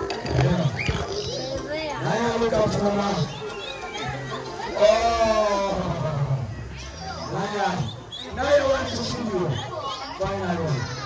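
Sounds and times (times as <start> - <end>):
people vocalizing: 0.0 - 11.0.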